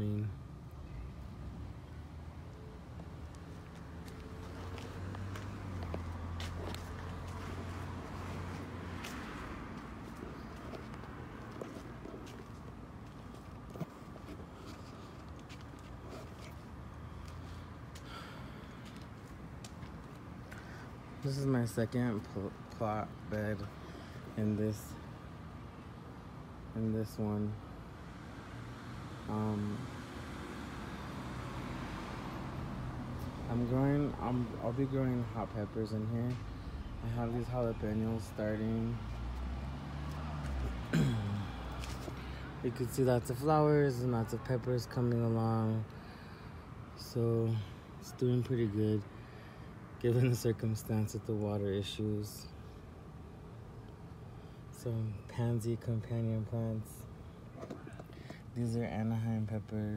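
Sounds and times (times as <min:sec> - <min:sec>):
outdoor background noise: 0:00.0 - 0:59.9
footsteps on concrete: 0:03.2 - 0:18.1, 0:18.7 - 0:20.6, 0:41.7 - 0:42.3.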